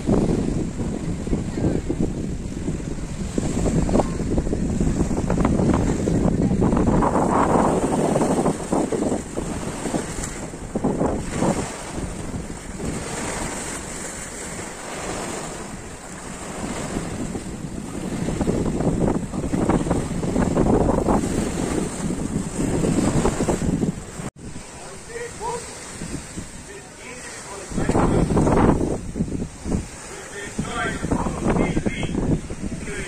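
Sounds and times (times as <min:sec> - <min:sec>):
sea waves breaking on rocks: 0:00.0 - 0:33.0
wind buffeting microphone: 0:00.0 - 0:33.0.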